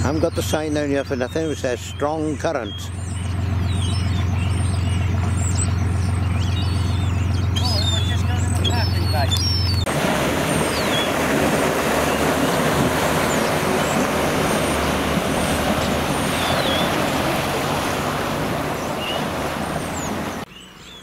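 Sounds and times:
rush of boat wake: 0.0 - 20.5
steady low hum: 0.0 - 20.5
outboard motor running: 0.0 - 20.9
faint high calls: 1.3 - 21.0.

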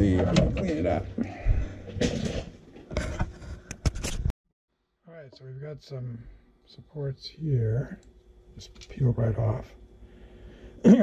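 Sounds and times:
rustling and scraping: 1.8 - 4.3.

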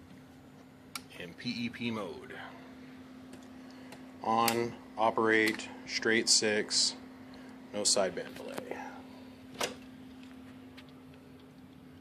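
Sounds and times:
amplifier humming: 0.0 - 12.0.

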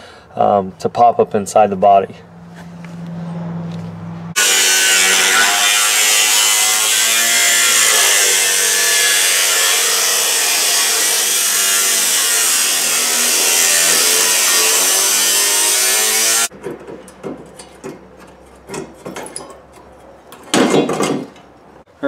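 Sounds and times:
cutoff wheel cutting steel: 4.4 - 18.5.

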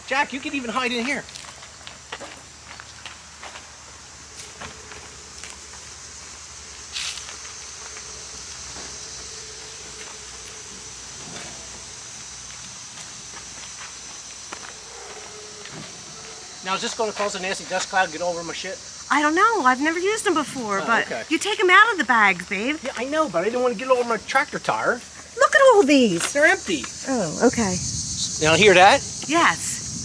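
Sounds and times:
high-pitched insect chorus: 0.0 - 30.0
footsteps: 1.0 - 27.0
handling noises: 6.9 - 17.3.

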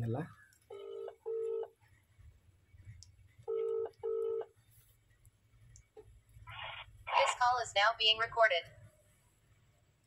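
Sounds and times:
phone ringback tone: 0.7 - 1.7, 3.5 - 4.5.

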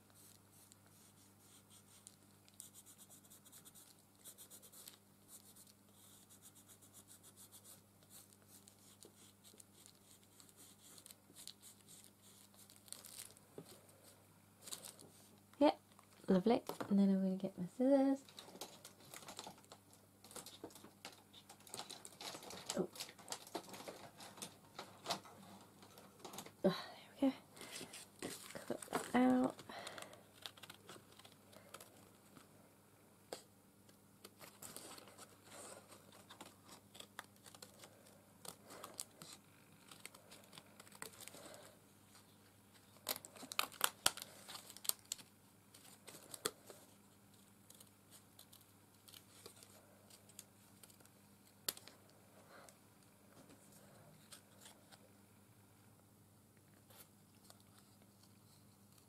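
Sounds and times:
card rustling: 27.6 - 32.5, 34.2 - 51.9.

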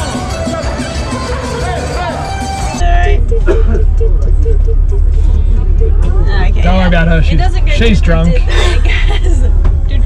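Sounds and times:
bus engine rumble: 0.0 - 10.0.

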